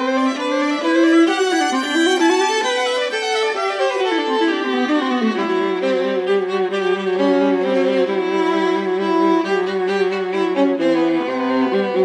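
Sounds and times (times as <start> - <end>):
viola and violin duet: 0.0 - 12.0.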